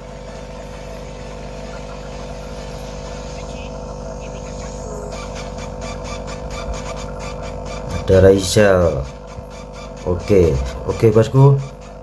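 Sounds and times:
mechanical hum with rasping rhythm: 0:00.0 - 0:12.0.

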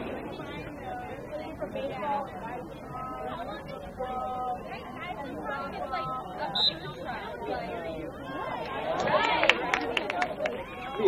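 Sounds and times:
spectators chattering: 0:00.0 - 0:11.0
referee's whistle blast: 0:06.5 - 0:07.0.

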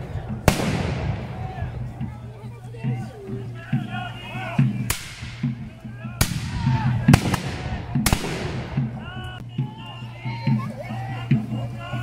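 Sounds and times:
musket shots echoing: 0:00.4 - 0:01.4, 0:04.9 - 0:05.4, 0:06.2 - 0:08.8.

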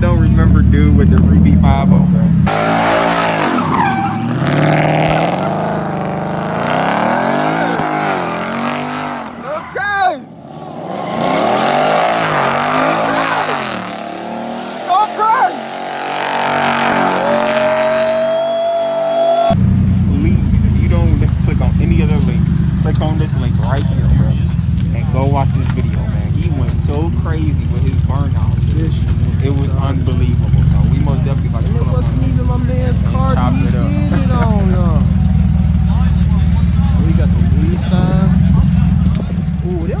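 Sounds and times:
car engine revving: 0:00.0 - 0:40.0.

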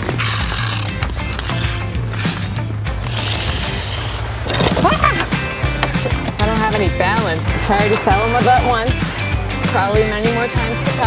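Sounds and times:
ice skates scraping ice: 0:00.0 - 0:08.1
background music with bass line: 0:00.0 - 0:11.0.

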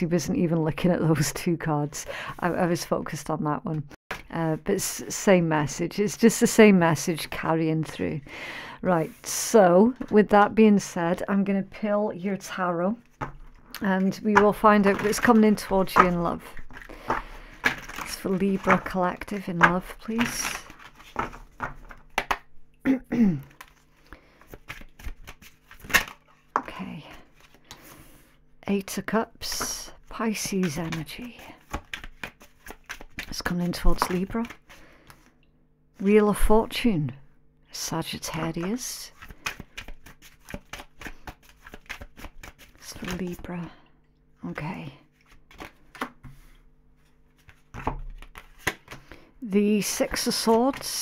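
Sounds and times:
cards being shuffled: 0:13.0 - 0:22.5, 0:23.5 - 0:27.9, 0:30.3 - 0:35.3, 0:38.3 - 0:43.5, 0:45.2 - 0:49.2.

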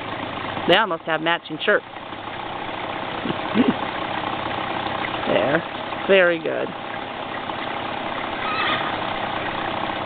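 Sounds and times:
dirt bike engine idling: 0:00.0 - 0:10.0.

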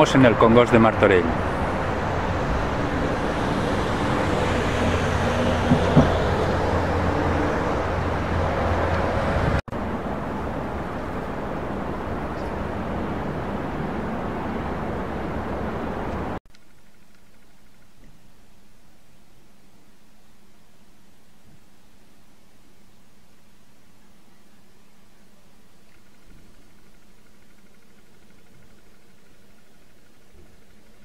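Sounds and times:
road traffic rumble: 0:00.0 - 0:16.4
knock: 0:05.6 - 0:06.2.

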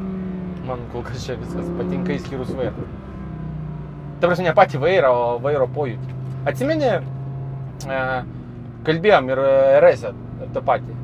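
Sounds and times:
car engine drone inside cabin: 0:00.0 - 0:11.0.

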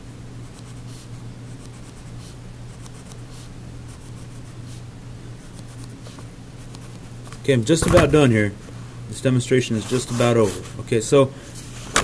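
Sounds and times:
low steady hum: 0:00.0 - 0:12.0
pencil scratching on paper: 0:00.4 - 0:04.8, 0:05.4 - 0:07.2.

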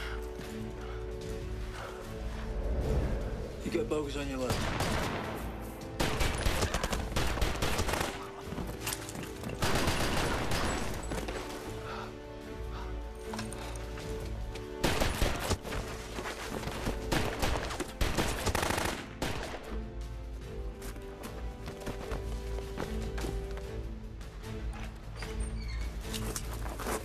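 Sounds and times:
film music score: 0:00.0 - 0:27.0
rifle and pistol gunfire: 0:06.0 - 0:08.3, 0:09.6 - 0:10.9.

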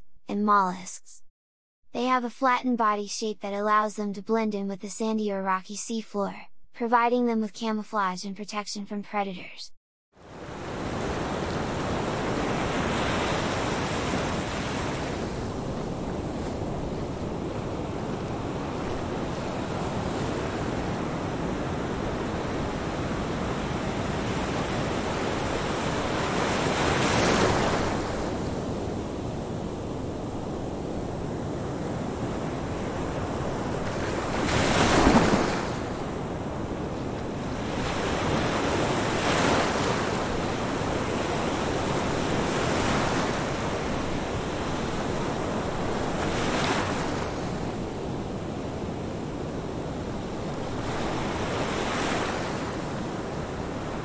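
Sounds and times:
ocean surf rushing: 0:10.3 - 0:36.7, 0:37.4 - 0:48.7, 0:50.1 - 0:54.0.

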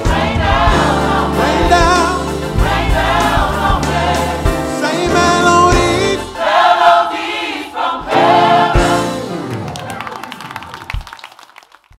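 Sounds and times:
gospel choir singing: 0:00.0 - 0:09.6.

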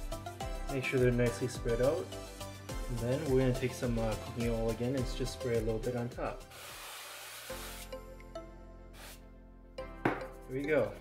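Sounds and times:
background music held notes: 0:00.0 - 0:06.7, 0:07.4 - 0:11.0
cooking oil spray hiss: 0:06.5 - 0:07.9, 0:09.0 - 0:09.2.

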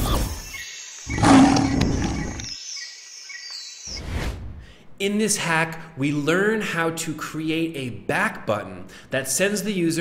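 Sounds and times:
loud animal-like roar: 0:01.1 - 0:02.4.

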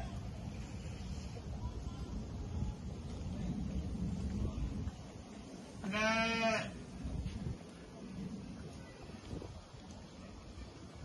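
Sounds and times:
sheep bleating: 0:05.8 - 0:06.7.

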